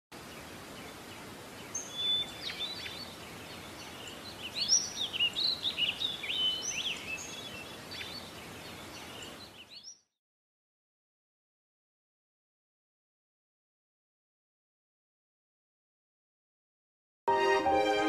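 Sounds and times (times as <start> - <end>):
steady background hiss: 0.2 - 9.7
small birds chirping and singing: 0.2 - 10.2.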